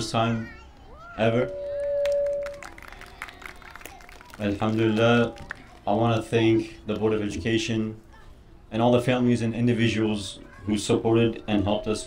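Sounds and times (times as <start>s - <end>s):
microphone feedback ringing tone: 1.3s - 2.8s.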